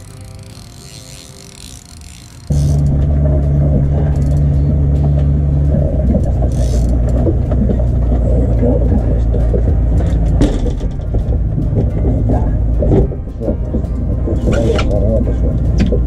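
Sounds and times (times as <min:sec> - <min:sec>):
faint hum: 0:00.0 - 0:15.8
boat engine rumbling: 0:00.0 - 0:16.0.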